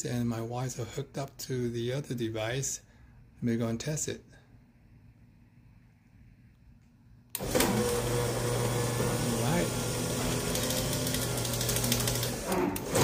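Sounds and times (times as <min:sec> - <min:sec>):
garage door opener motor humming: 0:07.4 - 0:13.0.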